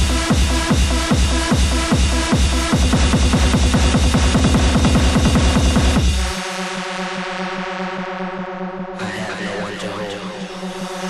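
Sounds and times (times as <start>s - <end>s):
kick drum: 0.0s - 6.4s.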